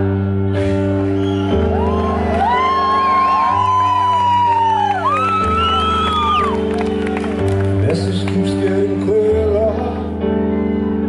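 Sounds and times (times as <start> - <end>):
piano chords: 0.0 - 11.0
crowd whooping: 0.8 - 7.8.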